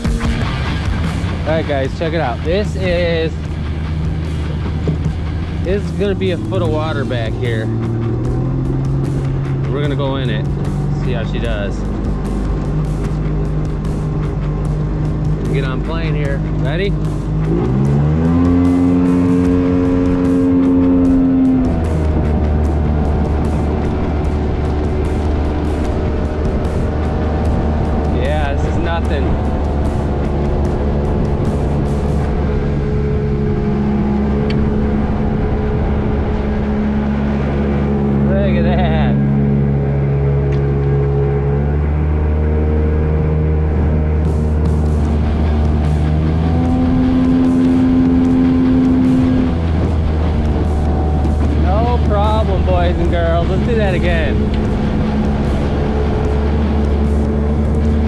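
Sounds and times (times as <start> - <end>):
outboard motor running at speed: 0.0 - 58.0.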